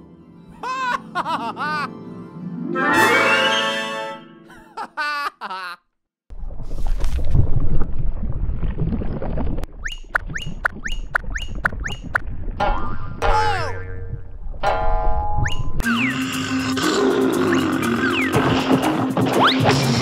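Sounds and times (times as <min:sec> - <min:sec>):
music score: 0:02.0 - 0:04.5
cartoon rising swoops: 0:02.8 - 0:04.2.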